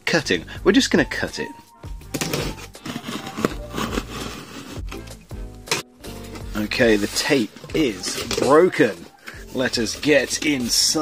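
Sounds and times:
knife slicing packing tape: 0:02.2 - 0:05.1.

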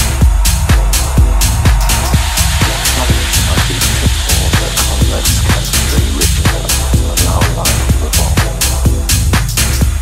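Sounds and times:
techno track: 0:00.0 - 0:10.0.

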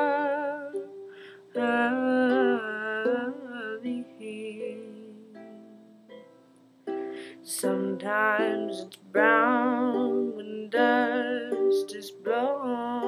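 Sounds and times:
ukulele chords: 0:00.0 - 0:13.0.

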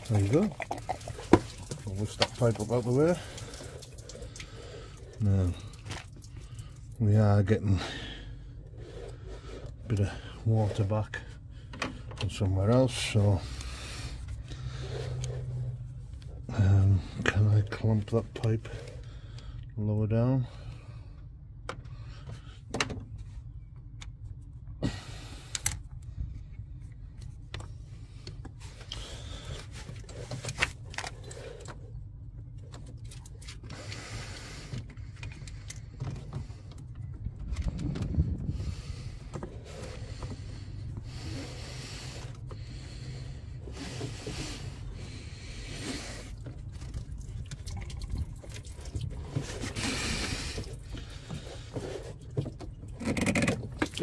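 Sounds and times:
steady low rumble: 0:00.0 - 0:53.0
scrapes clicks and knocks of parts: 0:25.4 - 0:34.0, 0:48.5 - 0:54.0.

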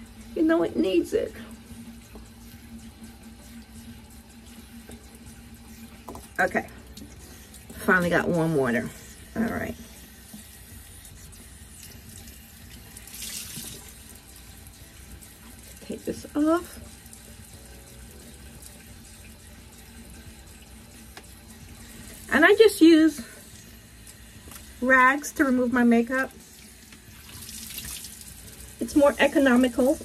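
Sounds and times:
faucet water running into sink: 0:00.0 - 0:30.0.

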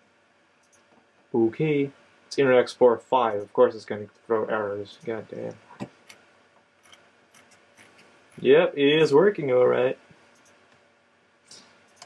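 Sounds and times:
quiet room noise: 0:00.0 - 0:12.0
computer mouse clicks: 0:00.6 - 0:00.9, 0:10.3 - 0:10.6, 0:11.5 - 0:12.0.

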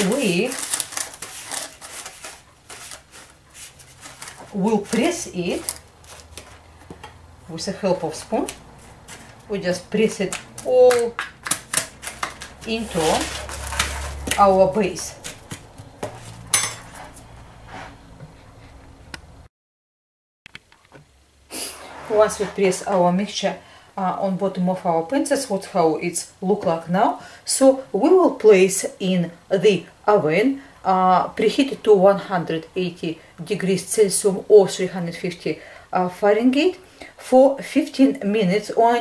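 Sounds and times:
baking paper rustling and crinkling: 0:00.0 - 0:07.1, 0:07.7 - 0:18.0, 0:21.7 - 0:23.4.

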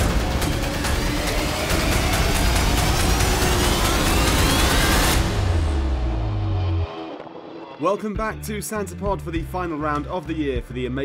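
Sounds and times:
intro music with rising sweep: 0:00.0 - 0:07.8.

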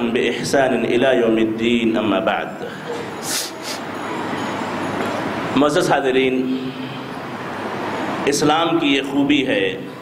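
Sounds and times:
short hisses: 0:03.2 - 0:03.9.

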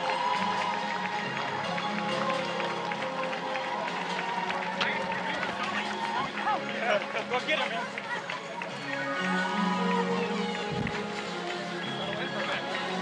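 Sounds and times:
background music: 0:00.0 - 0:13.0
crowd voices: 0:00.0 - 0:13.0
runners' shoes slapping on asphalt: 0:00.2 - 0:09.3.

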